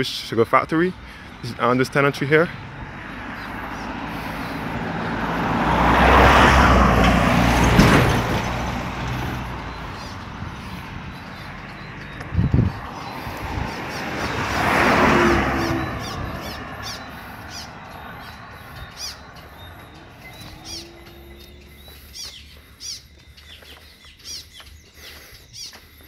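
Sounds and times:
vehicle passing by: 0.9 - 24.0
bird chirping: 7.5 - 26.0.

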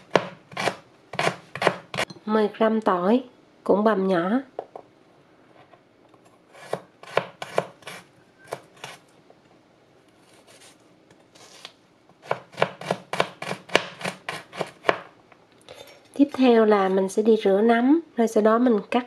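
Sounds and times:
knife chopping on plastic board: 0.0 - 2.1, 6.6 - 9.0, 12.2 - 15.1.

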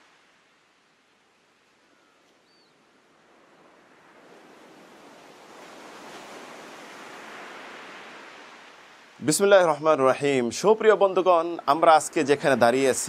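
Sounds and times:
wave washing in: 3.0 - 13.0.

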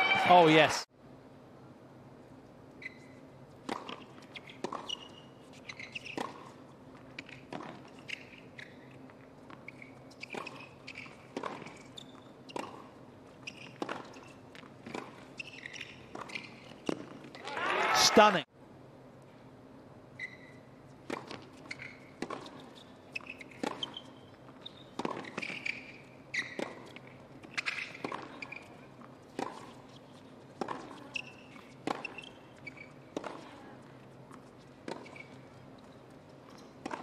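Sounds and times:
shoe squeaks: 2.8 - 3.3, 3.9 - 6.6, 7.2 - 9.0, 9.6 - 17.1, 20.2 - 20.7, 21.3 - 33.4, 34.9 - 36.8
rackets hitting tennis ball: 36.5 - 37.0.

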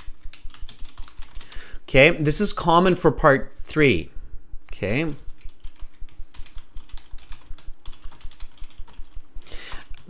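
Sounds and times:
computer keyboard typing: 0.0 - 1.7, 4.7 - 10.0.

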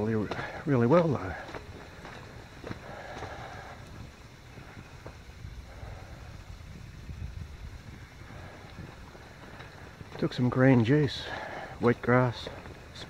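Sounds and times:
wind rumble on microphone: 1.2 - 13.0.

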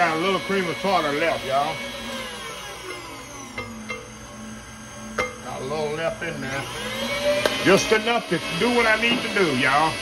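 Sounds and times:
stand mixer motor whine: 0.0 - 10.0.

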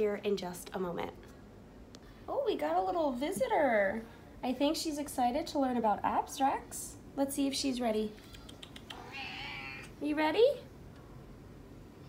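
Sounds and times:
cat meowing: 8.9 - 9.9.

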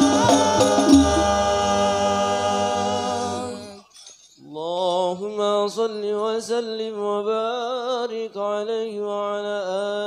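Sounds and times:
man singing: 0.0 - 3.9, 4.5 - 10.0
men singing through microphones: 0.0 - 3.9.

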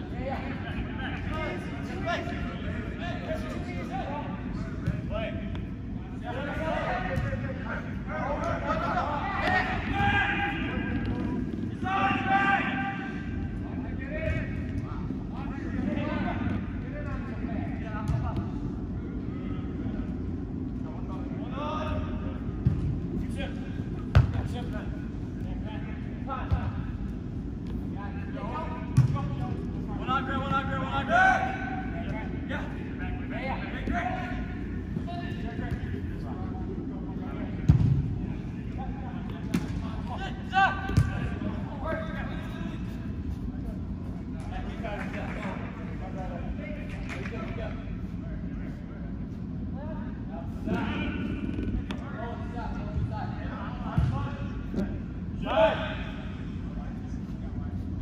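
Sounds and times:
indoor hall hum: 0.0 - 58.0
players shouting: 8.2 - 13.4
foot kicking ball: 24.1 - 24.4, 29.0 - 29.2, 40.9 - 41.3.

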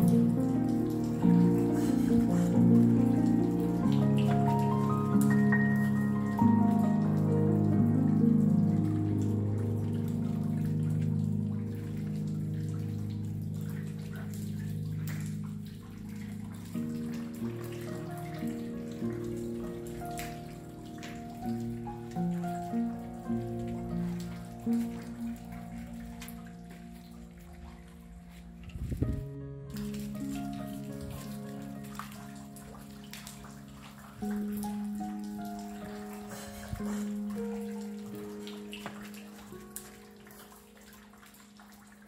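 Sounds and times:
rain pattering: 0.0 - 42.0
slow piano music: 0.0 - 42.0.

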